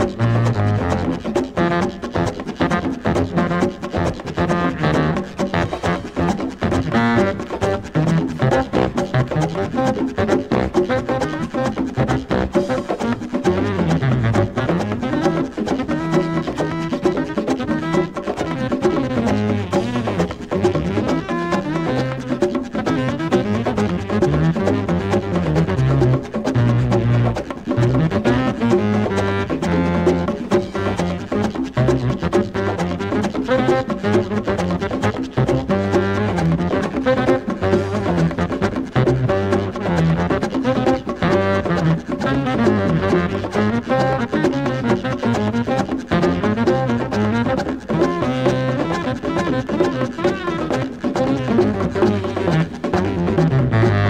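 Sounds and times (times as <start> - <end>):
hand percussion: 0.0 - 54.0
saxophone playing: 0.0 - 54.0
walking bass: 0.0 - 54.0.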